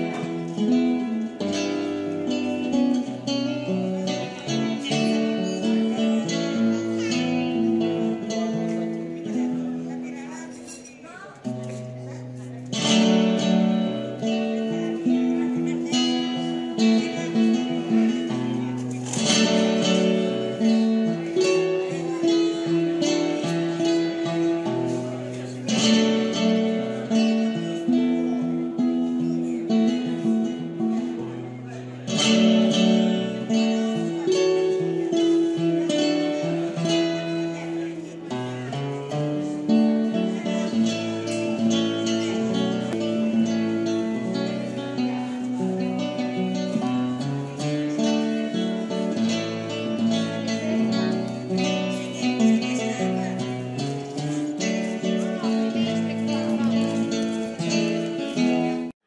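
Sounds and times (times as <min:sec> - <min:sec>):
acoustic guitar music: 0:00.0 - 0:59.0.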